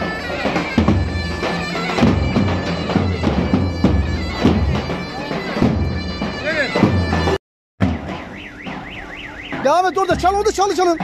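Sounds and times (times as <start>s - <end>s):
drum and zurna street music: 0.0s - 11.0s
low drum beat: 0.0s - 11.0s
warbling car alarm tone: 7.8s - 11.0s.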